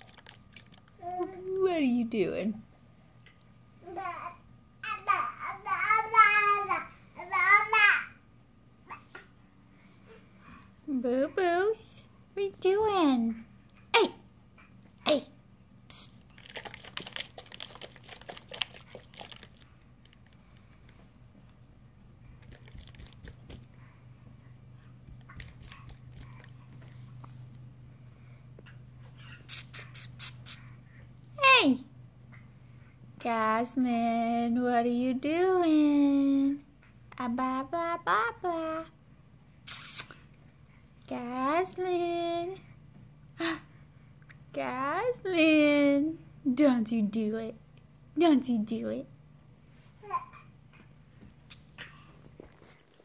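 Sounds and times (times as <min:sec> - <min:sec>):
steady low hum: 0:08.1 - 0:53.0
palms patting on a tile floor: 0:22.4 - 0:23.8, 0:25.0 - 0:27.0.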